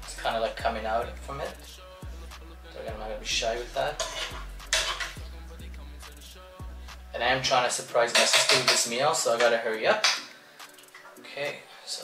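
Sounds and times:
background music: 0:00.0 - 0:12.0
metal spoon scraping frying pan: 0:03.8 - 0:05.2, 0:08.0 - 0:10.2.

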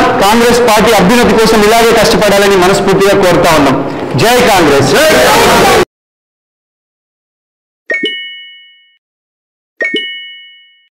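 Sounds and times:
bright bell-like ding: 0:07.9 - 0:09.0, 0:09.8 - 0:10.9.

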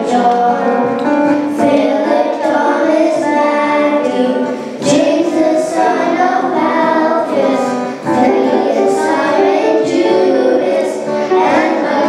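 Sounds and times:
children singing into microphones: 0:00.0 - 0:12.0.

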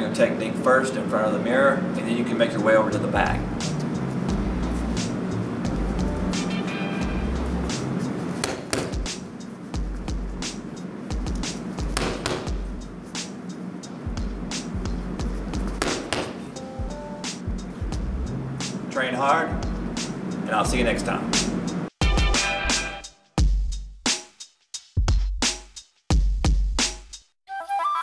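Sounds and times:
background music with bass beat: 0:02.9 - 0:08.2, 0:08.8 - 0:13.3, 0:14.0 - 0:18.8, 0:19.5 - 0:27.2
punches on heavy bag: 0:08.4 - 0:09.2, 0:11.8 - 0:12.6, 0:15.8 - 0:16.4.

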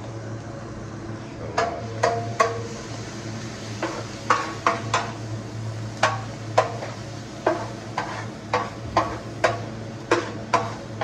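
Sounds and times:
low steady hum: 0:00.0 - 0:11.0
food sizzling: 0:01.6 - 0:11.0
metal spatula scraping griddle: 0:06.0 - 0:11.0.

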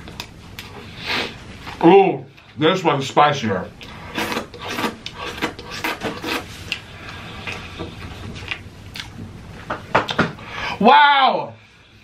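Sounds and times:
wet chewing and lip-smacking: 0:08.4 - 0:09.2.

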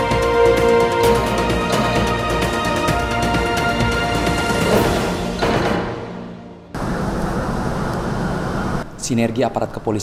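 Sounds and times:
news intro theme music: 0:00.0 - 0:06.8.

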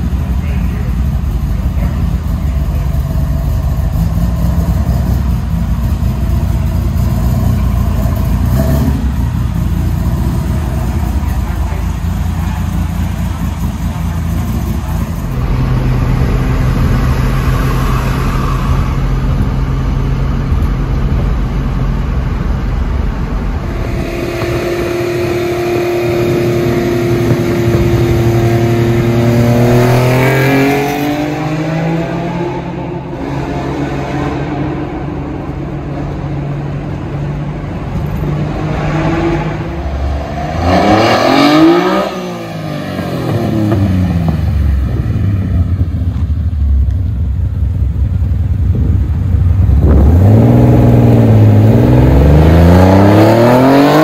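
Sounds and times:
car engine running and revving: 0:00.0 - 0:54.0.

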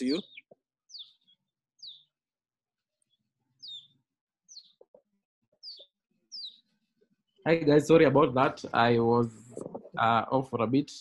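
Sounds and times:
bird chirping faintly: 0:00.0 - 0:02.1, 0:03.0 - 0:04.9, 0:05.6 - 0:06.7.

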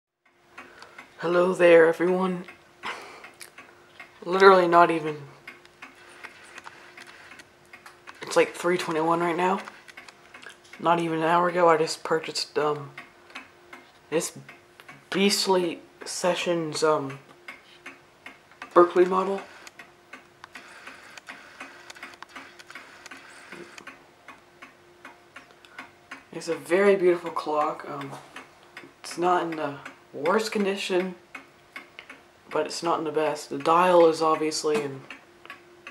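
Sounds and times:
mantel clock ticking: 0:00.2 - 0:35.9.

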